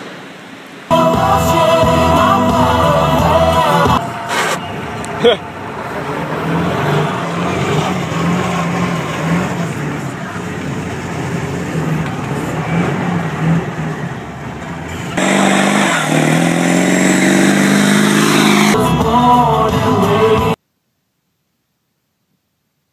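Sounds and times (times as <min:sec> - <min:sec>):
truck engine and road noise: 0:00.0 - 0:20.5
music playing: 0:00.9 - 0:07.2, 0:17.8 - 0:20.6.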